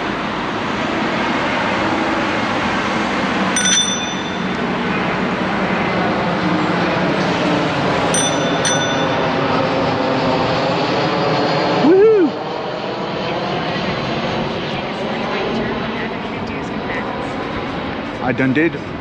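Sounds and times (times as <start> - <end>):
road and wind noise: 0.0 - 19.0.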